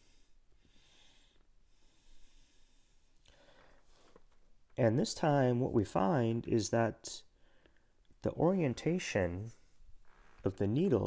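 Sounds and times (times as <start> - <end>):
soft breath: 0.0 - 4.3
faint microphone hiss: 0.0 - 11.0.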